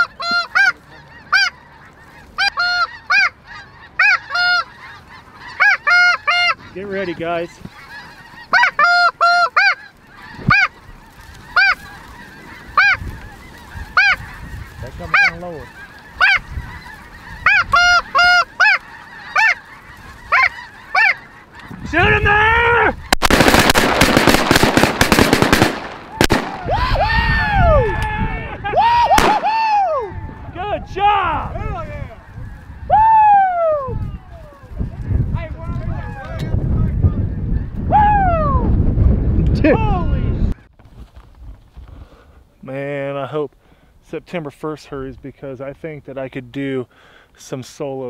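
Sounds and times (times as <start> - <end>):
geese honking: 0.0 - 37.9.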